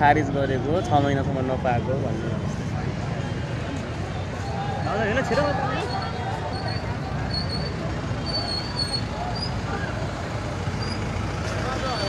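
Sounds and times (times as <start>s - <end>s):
crowd talking indistinctly: 0.0s - 12.0s
street traffic idling: 0.0s - 12.0s.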